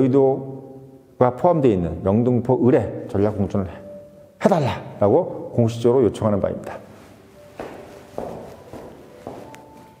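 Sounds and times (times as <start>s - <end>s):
footsteps walking away: 6.8s - 10.0s.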